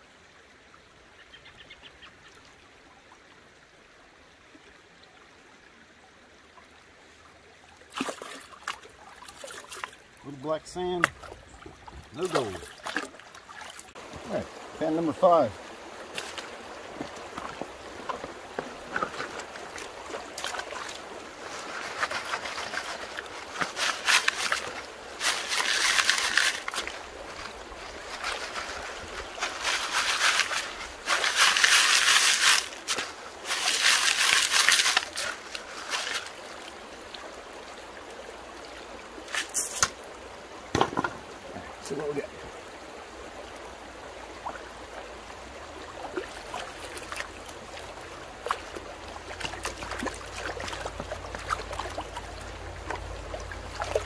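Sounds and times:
stream running: 0:00.0 - 0:54.0
water sloshing and gravel rattling: 0:07.8 - 0:37.4, 0:39.2 - 0:42.4, 0:45.8 - 0:54.0.

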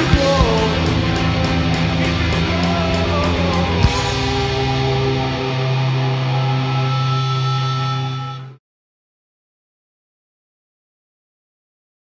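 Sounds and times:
punk rock band chord ringing: 0:00.0 - 0:08.6.

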